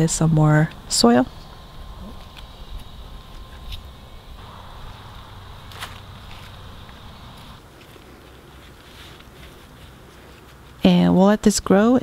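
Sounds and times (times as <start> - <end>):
hands rustling loose soil: 2.2 - 11.0.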